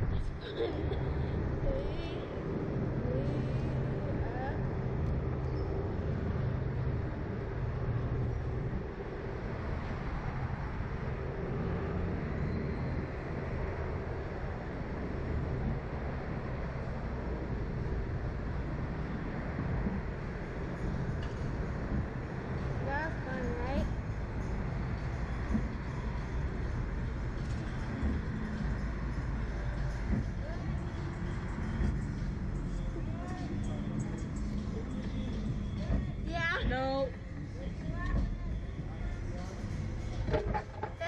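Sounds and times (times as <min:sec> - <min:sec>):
road traffic rumble: 0:00.0 - 0:41.0
wind: 0:00.0 - 0:41.0.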